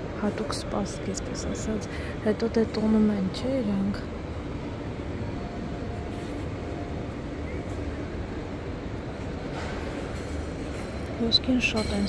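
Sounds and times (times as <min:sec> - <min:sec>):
low rumbling store hall noise: 0:00.0 - 0:12.0.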